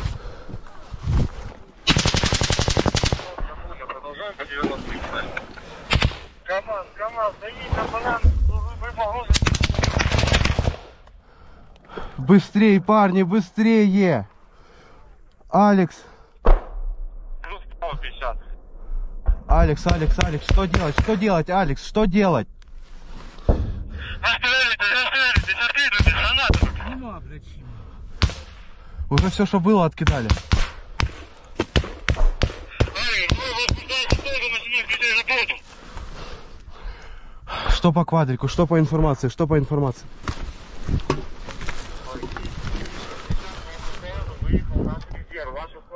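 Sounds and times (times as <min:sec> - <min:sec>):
gunshots cracking: 0:01.8 - 0:03.4, 0:05.9 - 0:06.4, 0:09.3 - 0:11.0, 0:19.7 - 0:21.2, 0:28.1 - 0:29.4, 0:30.0 - 0:34.5
rapid automatic gunfire: 0:01.9 - 0:03.3, 0:09.3 - 0:10.9
sharp gunshot crack: 0:05.9 - 0:06.3, 0:16.4 - 0:17.2, 0:28.2 - 0:29.3, 0:30.0 - 0:34.3
low rumble: 0:07.9 - 0:10.6, 0:16.4 - 0:24.4.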